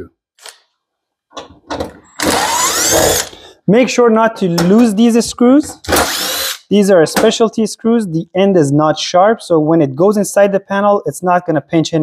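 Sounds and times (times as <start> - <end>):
cordless drill whining: 2.2 - 3.5, 5.9 - 6.7.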